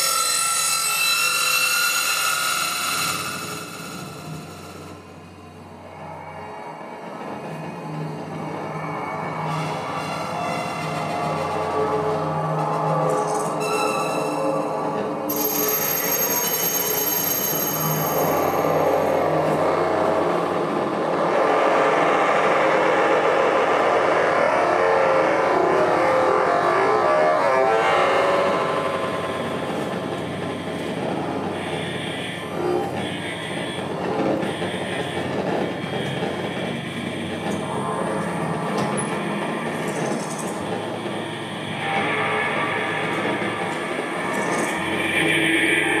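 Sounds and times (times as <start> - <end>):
noisy synthesizer texture: 4.0 - 15.3, 39.2 - 46.0
short high synth tones: 13.6 - 18.6.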